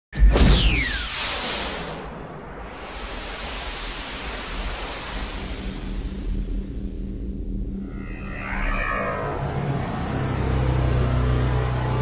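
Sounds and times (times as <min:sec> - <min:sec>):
rushing noise: 0:00.8 - 0:12.0
low steady drone: 0:02.8 - 0:12.0.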